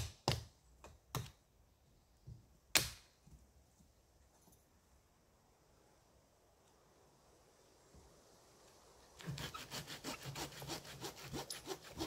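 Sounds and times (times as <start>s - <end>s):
sharp loud wood crack: 2.7s - 3.1s.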